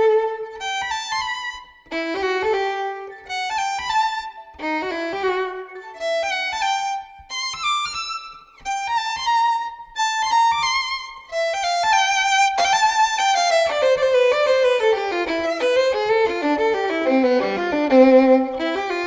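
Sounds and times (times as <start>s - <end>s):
solo violin playing fast runs: 0.0s - 19.0s.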